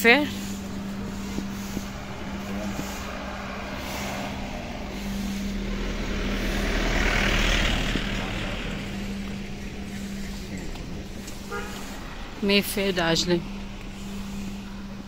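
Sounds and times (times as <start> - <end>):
motor vehicle passing: 0.0 - 15.0
steady low hum: 0.0 - 15.0.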